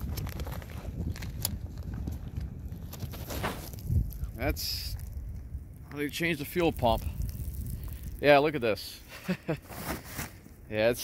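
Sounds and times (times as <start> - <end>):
wind rumbling on microphone: 0.0 - 9.2.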